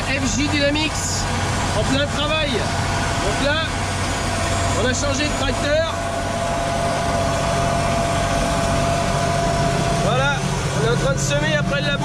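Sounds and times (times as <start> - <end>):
thin steady whine: 0.0 - 12.0
tractor engine under load: 0.0 - 12.0.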